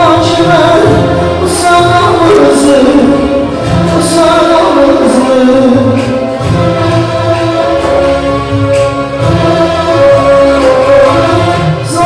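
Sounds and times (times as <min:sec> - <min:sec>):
live band music with singing: 0:00.0 - 0:12.0.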